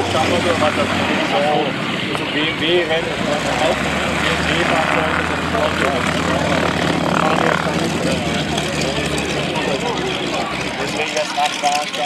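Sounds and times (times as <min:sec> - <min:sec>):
people talking: 0:00.0 - 0:12.0
radial engine idling: 0:04.8 - 0:12.0.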